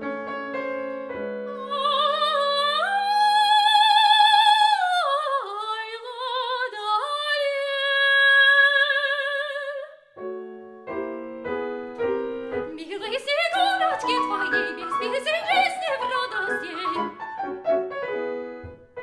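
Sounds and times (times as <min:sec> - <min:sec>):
grand piano playing: 0:00.0 - 0:02.8, 0:10.2 - 0:19.0
woman singing opera: 0:01.5 - 0:10.0, 0:12.7 - 0:17.2.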